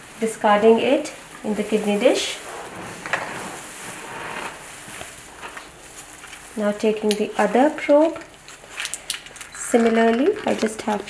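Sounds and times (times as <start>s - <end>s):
faint rustling: 0.0s - 11.0s.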